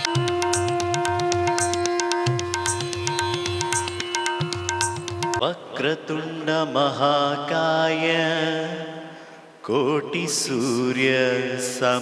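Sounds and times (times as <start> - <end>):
man chanting in sung style: 5.4 - 12.0.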